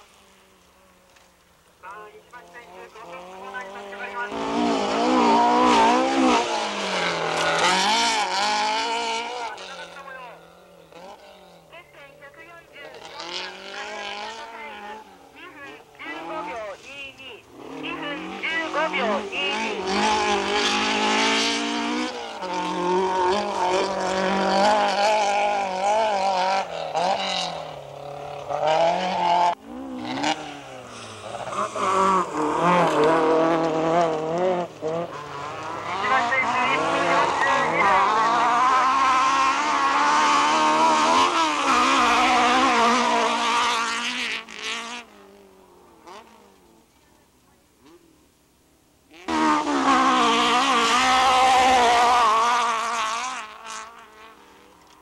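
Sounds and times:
car engine revving hard: 0:02.6 - 0:11.6, 0:12.7 - 0:46.6, 0:49.1 - 0:55.0.

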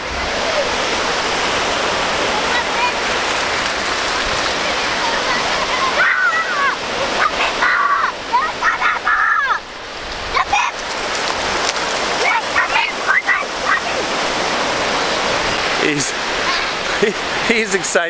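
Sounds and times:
small waves washing ashore: 0:00.0 - 0:18.0
child squealing and shouting: 0:05.0 - 0:09.7.

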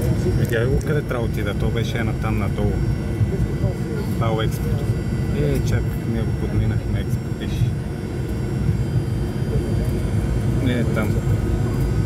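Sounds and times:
aircraft cabin engine rumble: 0:00.0 - 0:12.0.

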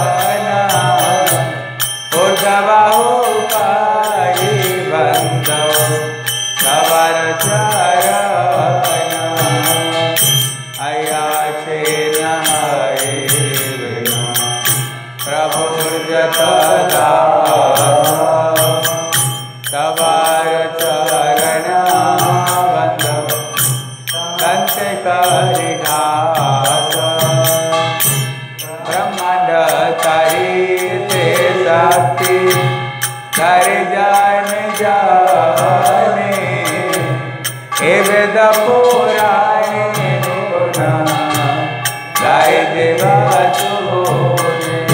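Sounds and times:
clinking beat: 0:00.0 - 0:44.9
devotional chanting: 0:00.0 - 0:44.9.

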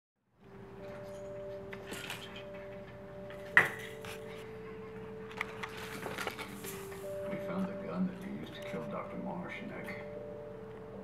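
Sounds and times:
faint steady tones: 0:00.4 - 0:11.0.

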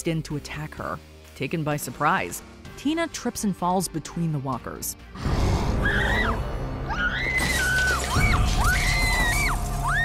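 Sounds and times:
tense dramatic music: 0:00.0 - 0:10.0
woman screaming: 0:05.8 - 0:10.0
glass crunching and breaking: 0:07.4 - 0:10.0.

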